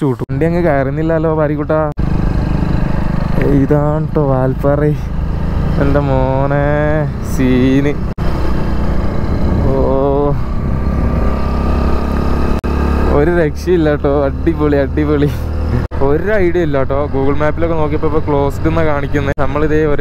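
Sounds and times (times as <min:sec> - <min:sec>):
wind rumble: 0:00.0 - 0:13.2
motorcycle engine: 0:00.2 - 0:20.0.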